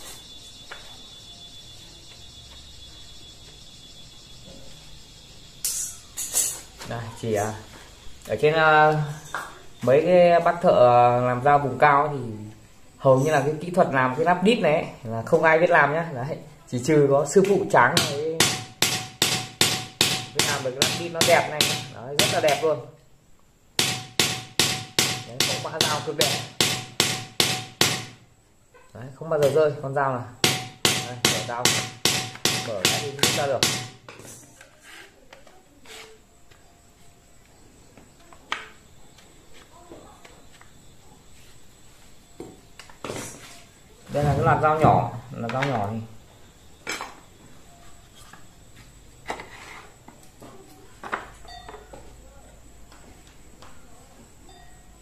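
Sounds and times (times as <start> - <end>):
short metallic ring: 5.6 - 6.7
hammer striking metal: 17.9 - 22.7, 23.8 - 28.2, 30.4 - 34.0.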